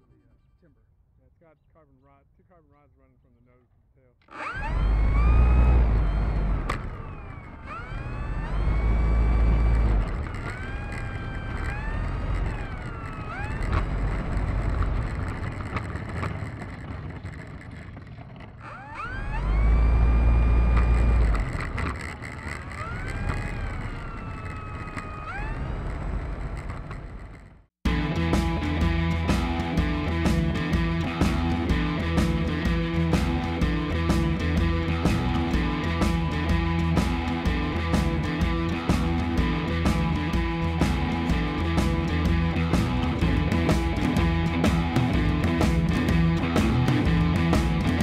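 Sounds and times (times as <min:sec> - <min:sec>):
electric motor and propeller whine: 0:04.3 - 0:48.0
deep rumble: 0:04.5 - 0:48.0
rock music with guitar: 0:27.8 - 0:48.0.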